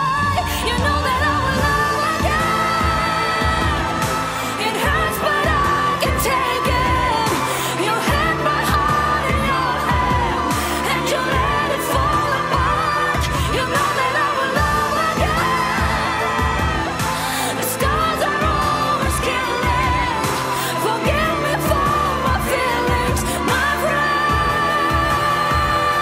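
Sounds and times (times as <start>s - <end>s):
bass: 0.0s - 26.0s
drums: 0.0s - 26.0s.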